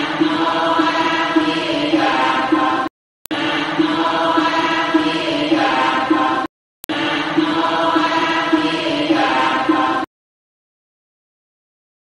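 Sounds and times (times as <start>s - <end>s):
buddhist chanting: 0.0s - 10.1s.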